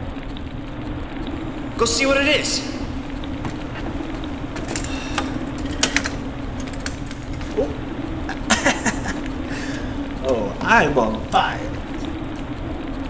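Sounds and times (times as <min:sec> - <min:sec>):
sharp clicks and crackles: 0:00.0 - 0:01.8, 0:02.7 - 0:13.0
low hum: 0:00.0 - 0:13.0.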